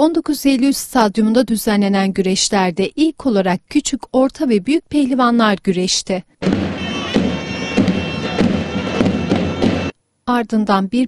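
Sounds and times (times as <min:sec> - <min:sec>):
shrill double-reed melody: 0:06.4 - 0:09.9
drum beats: 0:06.4 - 0:10.0.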